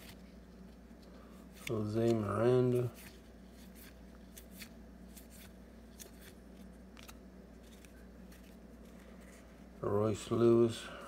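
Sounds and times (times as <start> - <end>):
trading cards being flipped: 0.0 - 9.5.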